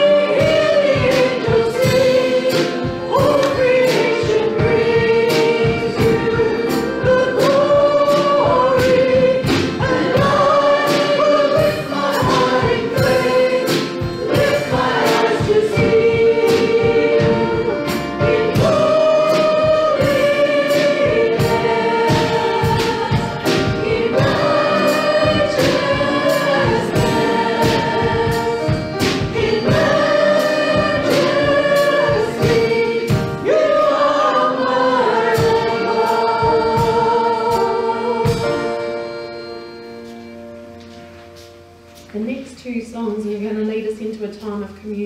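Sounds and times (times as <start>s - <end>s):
congregation singing worship song: 0.0s - 41.9s
instrumental backing with beat: 0.0s - 42.2s.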